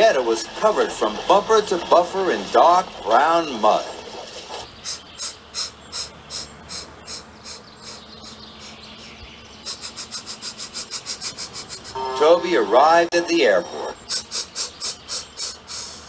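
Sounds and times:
steam engine chuffing: 0.0 - 13.1, 13.9 - 16.0.

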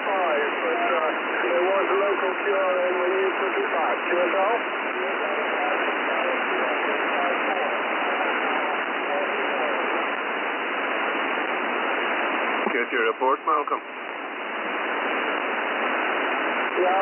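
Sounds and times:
voice over radio: 0.0 - 10.1, 12.6 - 13.9
radio static hiss: 0.0 - 17.0.

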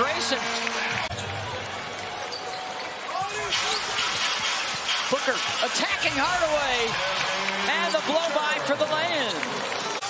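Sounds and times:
crowd noise: 0.0 - 10.0
sneakers squeaking: 0.5 - 8.5.

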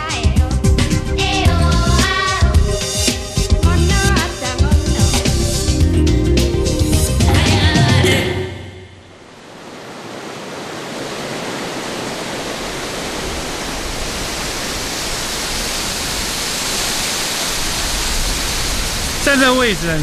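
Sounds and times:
waterfall roaring: 9.0 - 20.0
man talking: 19.2 - 20.0.

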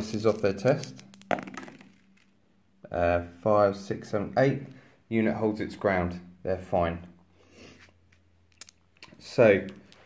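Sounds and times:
dice click: 0.6 - 2.3, 9.6 - 10.0.

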